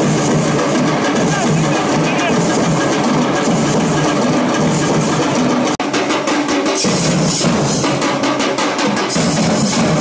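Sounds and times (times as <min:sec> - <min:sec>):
metal drums beaten with sticks: 0:00.0 - 0:10.0.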